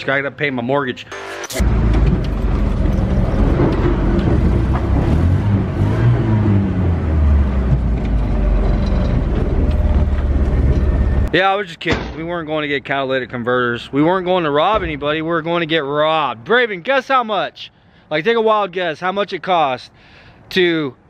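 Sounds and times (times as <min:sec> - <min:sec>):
car engine rumbling: 0:01.6 - 0:11.3
road noise inside car: 0:01.6 - 0:11.3.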